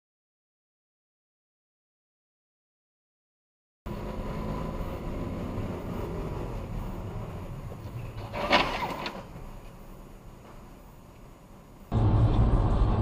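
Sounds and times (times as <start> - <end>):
car engine and road noise: 3.9 - 13.0.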